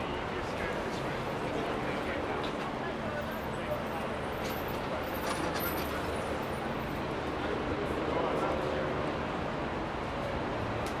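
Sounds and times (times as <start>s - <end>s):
passers-by talking: 0.0s - 10.8s
traffic running by: 0.0s - 11.0s.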